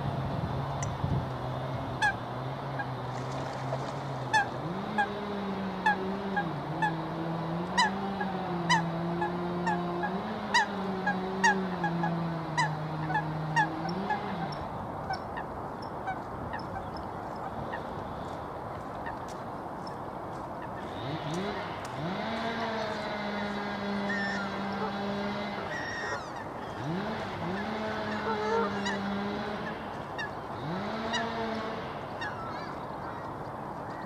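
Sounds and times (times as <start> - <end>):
low motor hum: 0.0 - 34.0
short honking bird calls: 27.5 - 33.2.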